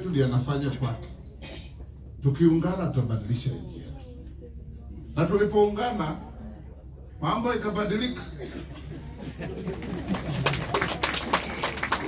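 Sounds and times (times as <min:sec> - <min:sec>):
crowd clapping: 0:09.4 - 0:12.0.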